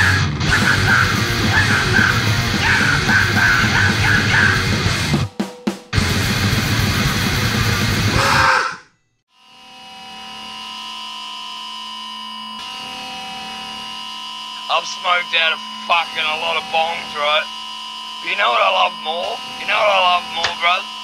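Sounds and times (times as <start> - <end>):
hardcore punk song: 0.0 - 8.8.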